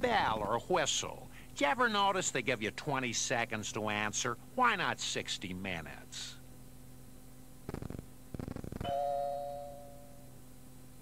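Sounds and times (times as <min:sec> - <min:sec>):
rattling buzzes: 0:07.6 - 0:09.0
bell-like chime: 0:08.9 - 0:10.4.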